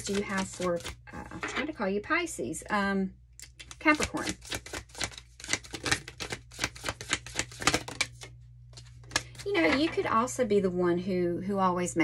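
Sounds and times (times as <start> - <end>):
cards being shuffled: 0.0 - 1.6, 3.5 - 9.9.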